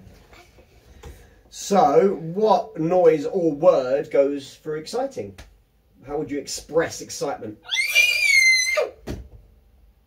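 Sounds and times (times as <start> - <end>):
girl screaming: 7.6 - 9.0.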